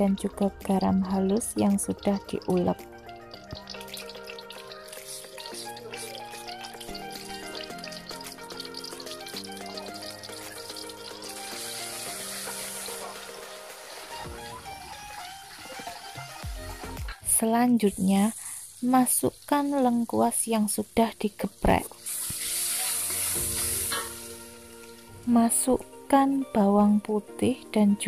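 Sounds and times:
background music with held notes: 0.0 - 17.4, 21.4 - 28.0
paste frying in oil: 0.4 - 16.4, 17.8 - 25.0.

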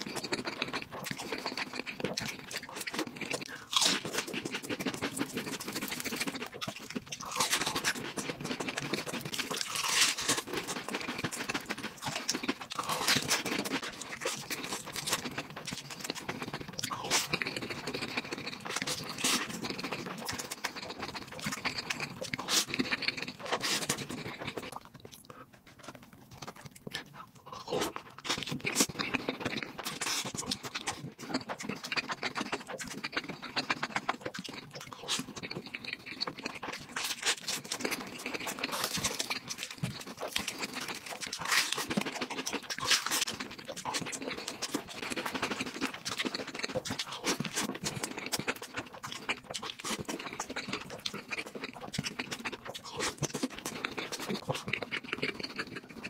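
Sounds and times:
person chewing food: 0.0 - 56.0.

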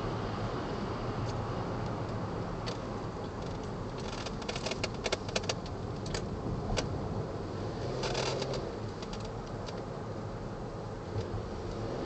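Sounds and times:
engine and road noise: 0.0 - 12.0
light clicks and rattles: 2.1 - 7.0.

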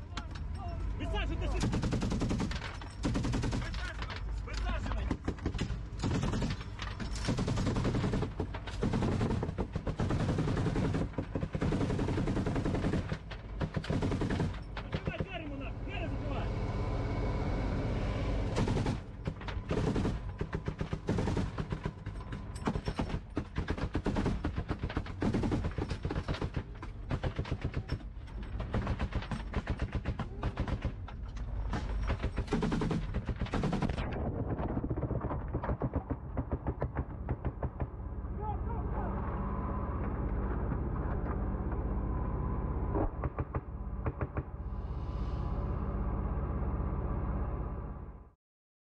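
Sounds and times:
machine-gun fire bursts: 1.6 - 4.0, 5.1 - 15.3, 18.6 - 22.0, 22.7 - 27.9, 32.1 - 34.0.

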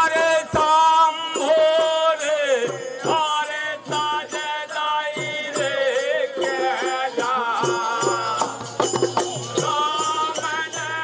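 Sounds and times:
drum beat: 0.0 - 11.0.

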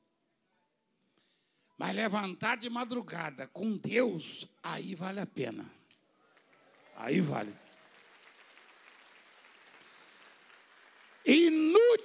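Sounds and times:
faint applause from congregation: 6.2 - 12.0.

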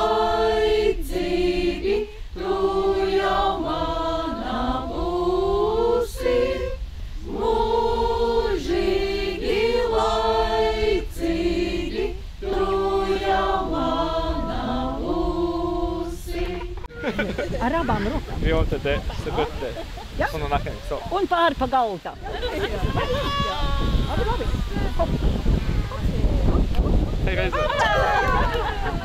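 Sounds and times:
women singing unaccompanied: 0.0 - 18.2.

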